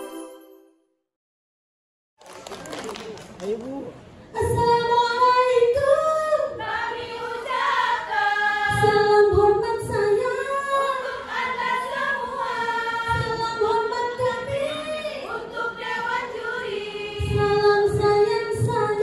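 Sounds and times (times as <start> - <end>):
women singing together: 4.4 - 19.0.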